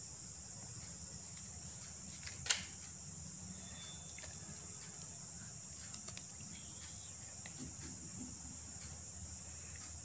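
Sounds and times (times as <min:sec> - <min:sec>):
insects trilling: 0:00.0 - 0:10.0.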